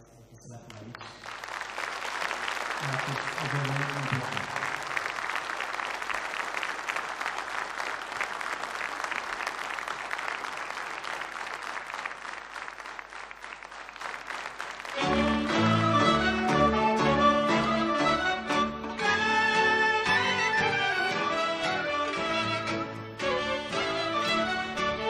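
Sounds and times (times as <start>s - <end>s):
audience applauding: 0.7s - 25.0s.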